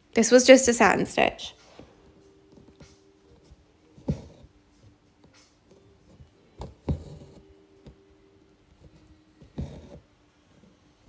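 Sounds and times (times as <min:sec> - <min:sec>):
needle punching through fabric: 0:06.1 - 0:08.0.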